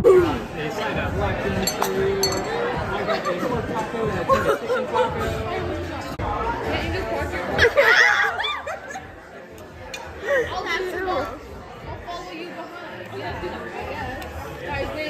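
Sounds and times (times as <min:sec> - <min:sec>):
background talk: 0:00.0 - 0:15.0
young women chattering: 0:10.0 - 0:15.0.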